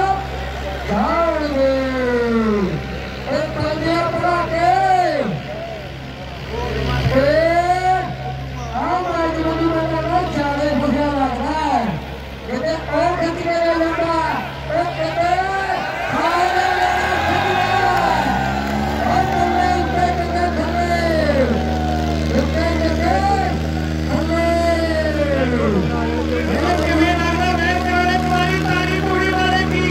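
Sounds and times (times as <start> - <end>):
loudspeaker announcer calling: 0.0 - 5.8, 6.4 - 29.9
tractor engines droning: 0.0 - 29.9
man shouting: 14.1 - 23.5.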